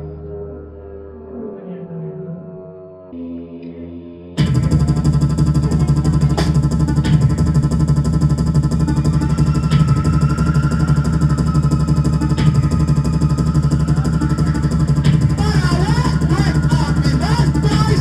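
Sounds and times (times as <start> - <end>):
synth keyboard: 0.0 - 18.0
fast electronic beat with heavy bass: 4.4 - 18.0
person's voice on microphone: 15.1 - 18.0.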